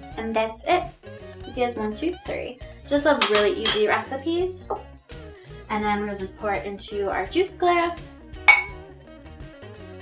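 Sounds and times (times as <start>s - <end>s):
quiet background music: 0.0s - 10.0s
glass pitcher clinking on glass: 3.2s - 3.9s, 8.5s - 8.8s.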